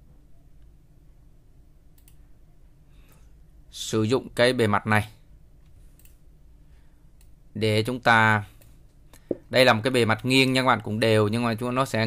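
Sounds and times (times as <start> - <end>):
low steady hum: 0.0 - 12.0
computer mouse clicks: 1.9 - 2.2, 5.6 - 6.2, 7.2 - 7.4.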